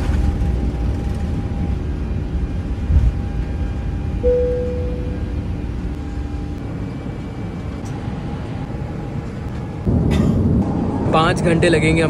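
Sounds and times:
airliner cabin rumble: 0:00.0 - 0:12.0
faint steady hum: 0:01.6 - 0:09.9.

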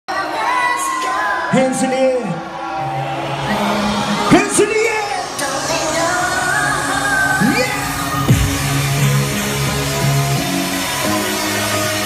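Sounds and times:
live electronic dance music: 0:00.1 - 0:12.0
synth bass notes: 0:02.6 - 0:12.0.

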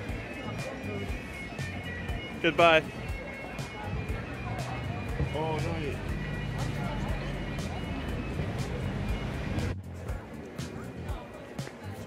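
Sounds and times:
low traffic rumble: 0:00.0 - 0:11.3
crowd voices: 0:00.0 - 0:12.0
music: 0:00.0 - 0:12.0.

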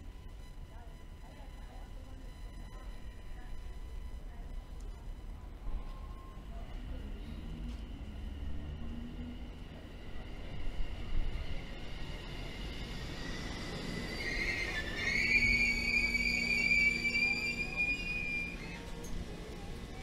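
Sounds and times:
train running rumble: 0:05.5 - 0:20.0
train brake squeal: 0:12.8 - 0:19.2.

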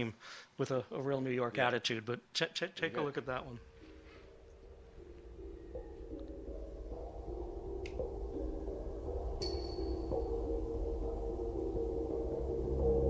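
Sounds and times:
electronic droning tones: 0:03.6 - 0:13.0.

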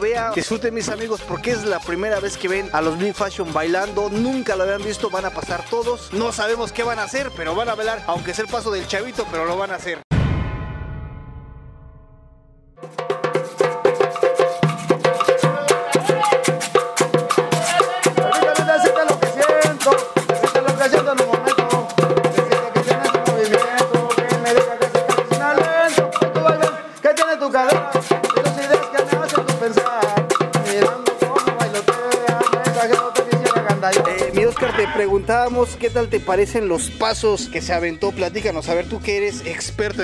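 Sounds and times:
cumbia music: 0:00.0 - 0:09.9, 0:12.8 - 0:40.0
metal scraper rhythm: 0:12.8 - 0:35.0.

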